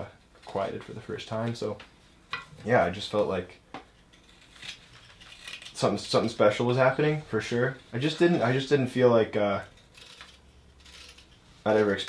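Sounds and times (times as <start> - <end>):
man talking: 0.0 - 1.8, 2.5 - 3.6, 5.8 - 9.7, 11.6 - 12.0
carving tool scraping wood: 4.0 - 5.9, 9.7 - 11.6.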